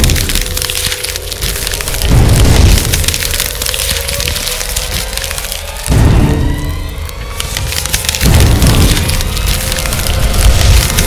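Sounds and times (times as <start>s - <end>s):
crackling and splintering: 0.0s - 11.0s.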